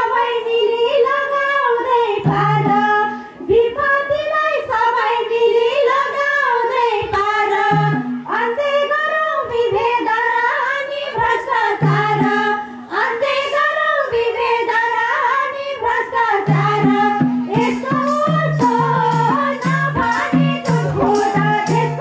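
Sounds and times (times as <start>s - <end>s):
women singing folk song: 0.0s - 22.0s
hand drum strokes: 16.4s - 22.0s.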